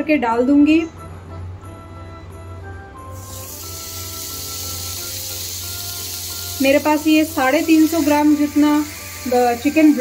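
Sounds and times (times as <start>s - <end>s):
soft background music: 0.0s - 10.0s
chicken sizzling on grill pan: 3.1s - 10.0s.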